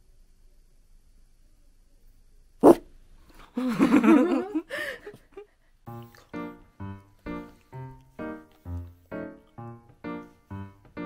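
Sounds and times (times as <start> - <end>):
dog barking: 2.6 - 2.9.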